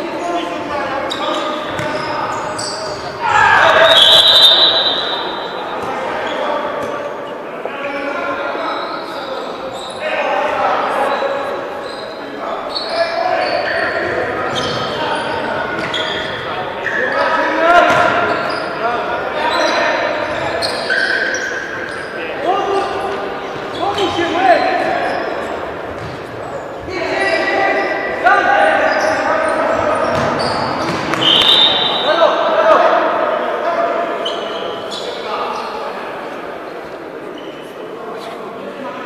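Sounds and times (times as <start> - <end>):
players shouting: 1.0 - 6.1.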